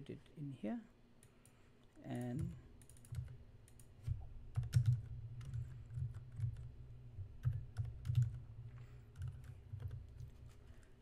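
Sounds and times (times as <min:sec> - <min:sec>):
computer keyboard typing: 0:02.2 - 0:06.8, 0:07.4 - 0:10.9.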